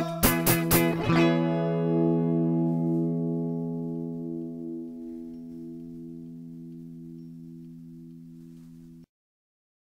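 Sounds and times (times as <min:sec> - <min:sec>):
guitar chord ringing out: 0:00.0 - 0:09.1.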